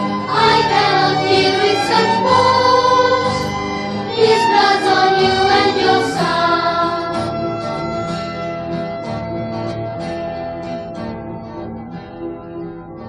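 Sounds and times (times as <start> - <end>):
children's choir singing: 0.0 - 8.1
small ensemble accompanying: 0.0 - 13.0.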